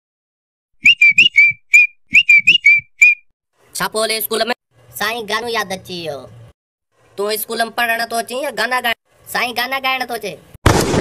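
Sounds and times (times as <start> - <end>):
whistled tune: 0.8 - 3.3.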